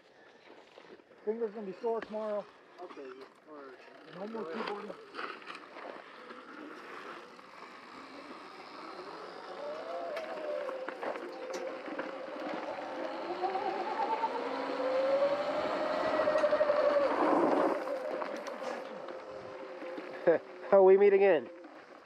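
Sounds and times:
electric dirt bike motors whining: 0:00.6 - 0:22.0.

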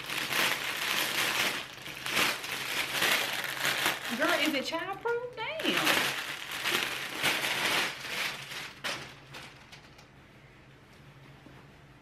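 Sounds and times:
plastic bag crinkling: 0:00.0 - 0:10.1.

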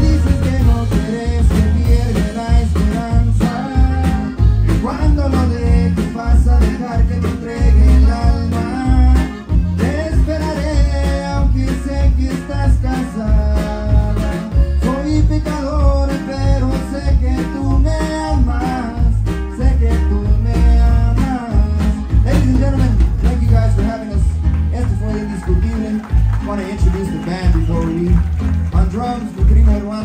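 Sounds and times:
person singing: 0:00.0 - 0:28.1
acoustic guitar: 0:00.0 - 0:30.0
button accordion melody: 0:00.0 - 0:30.0
drums steady beat: 0:00.0 - 0:30.0
electric bass: 0:00.0 - 0:30.0.

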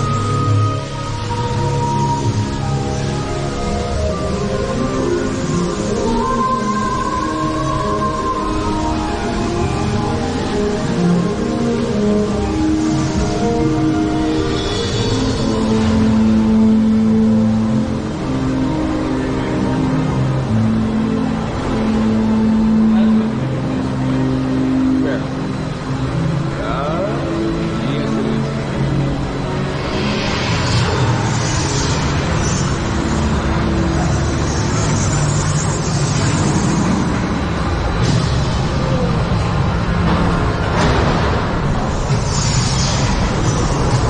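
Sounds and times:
loud rushing noise: 0:00.0 - 0:44.0
theme park ride music: 0:00.0 - 0:44.0.

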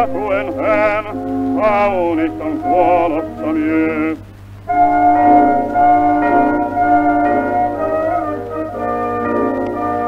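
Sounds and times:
low hum from old record: 0:00.0 - 0:10.0
orchestra playing held chords: 0:00.0 - 0:10.0.

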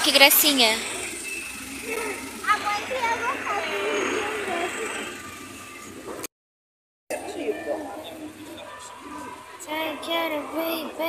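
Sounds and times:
people talking: 0:00.0 - 0:00.8, 0:01.8 - 0:05.2, 0:07.1 - 0:11.0
outdoor background noise: 0:00.0 - 0:06.3, 0:07.1 - 0:11.0.

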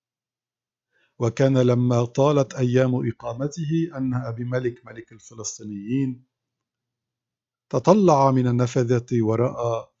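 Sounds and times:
man speaking: 0:01.2 - 0:06.2, 0:07.7 - 0:10.0.

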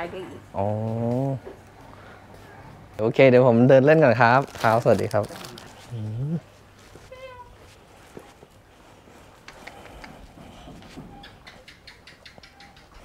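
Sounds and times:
faint footsteps: 0:00.6 - 0:03.4, 0:04.1 - 0:11.7
cat meowing: 0:07.1 - 0:07.5.

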